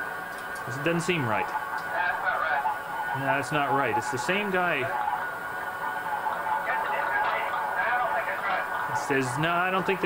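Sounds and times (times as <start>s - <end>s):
cockpit background noise: 0.0s - 10.0s.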